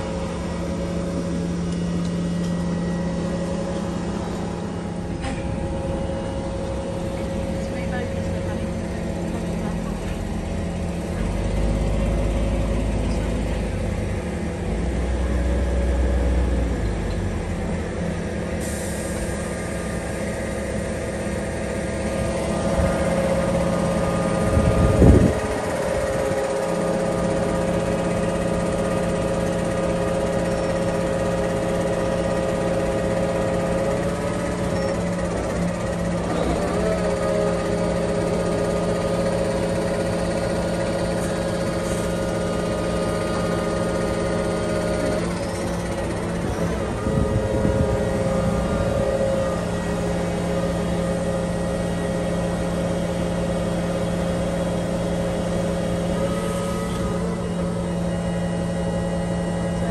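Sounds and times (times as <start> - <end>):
crane diesel engine humming: 0.0 - 59.9.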